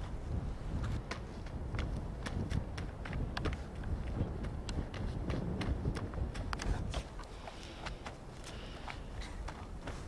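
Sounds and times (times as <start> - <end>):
crunching footsteps: 0.7 - 10.0.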